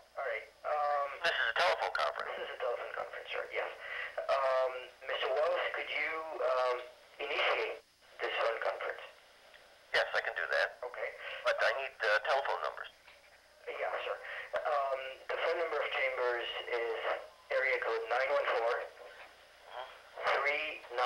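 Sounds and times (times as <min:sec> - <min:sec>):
speech over a telephone line: 0:00.2 - 0:09.2, 0:09.9 - 0:13.0, 0:13.6 - 0:21.0.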